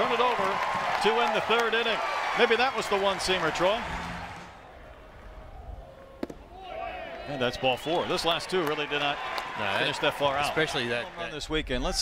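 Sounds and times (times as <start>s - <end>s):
baseball smacking into mitt: 6.2s - 6.4s.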